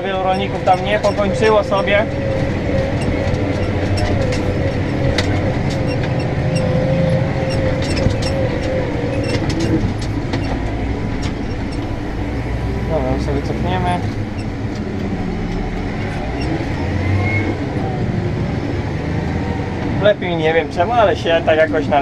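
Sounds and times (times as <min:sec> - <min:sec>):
rattles and clicks: 0:00.0 - 0:18.4
tractor engine rumble: 0:00.0 - 0:22.0
wavering whine: 0:00.0 - 0:22.0.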